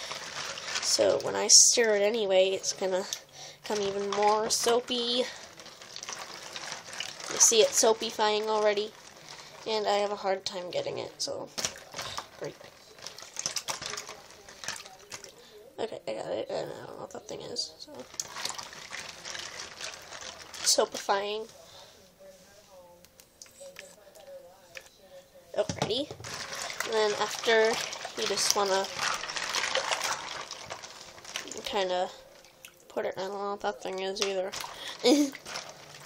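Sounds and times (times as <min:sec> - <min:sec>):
plastic figurines clattering in water: 0:00.0 - 0:15.4, 0:17.4 - 0:21.4, 0:25.6 - 0:36.0.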